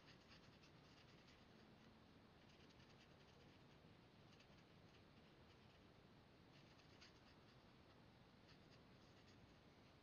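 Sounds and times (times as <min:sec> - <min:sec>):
marker scratching on cardstock: 0:00.0 - 0:01.5, 0:02.4 - 0:03.7, 0:06.5 - 0:07.6.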